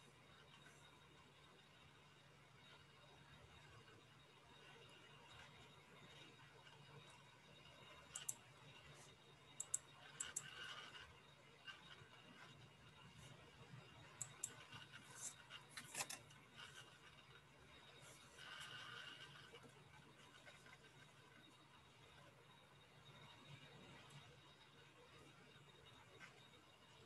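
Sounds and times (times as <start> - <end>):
computer mouse clicks: 8.1 - 8.4, 9.5 - 11.0, 14.1 - 16.8.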